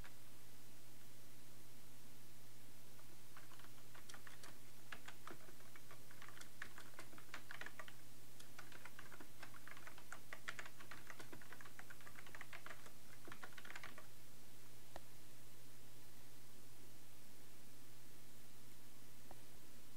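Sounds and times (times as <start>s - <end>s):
keyboard typing: 3.0s - 14.1s.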